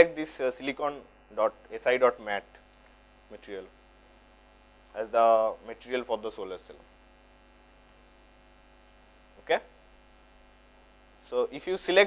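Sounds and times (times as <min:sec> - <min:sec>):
person speaking: 0:00.0 - 0:02.6
electrical mains hum: 0:00.0 - 0:12.0.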